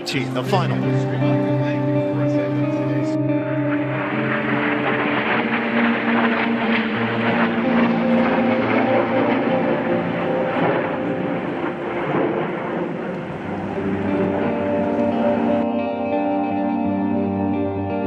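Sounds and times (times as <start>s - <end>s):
jets flying overhead: 0.0s - 16.6s
background music: 0.0s - 18.0s.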